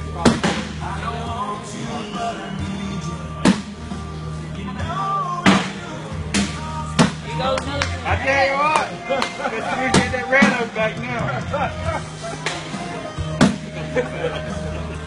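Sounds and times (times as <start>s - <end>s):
background music: 0.0s - 15.0s
voices: 4.3s - 15.0s.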